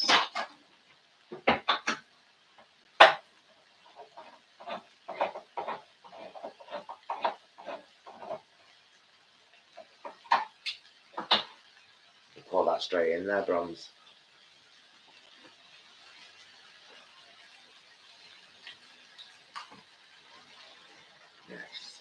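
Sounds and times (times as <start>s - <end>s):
spoon scraping a pan: 0.0s - 0.6s, 3.9s - 8.6s, 9.7s - 11.7s.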